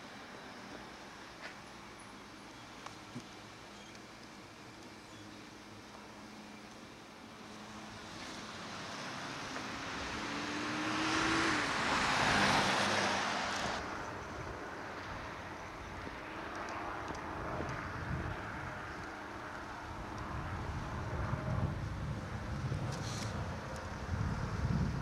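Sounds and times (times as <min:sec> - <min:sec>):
car passing by: 0:07.4 - 0:14.2.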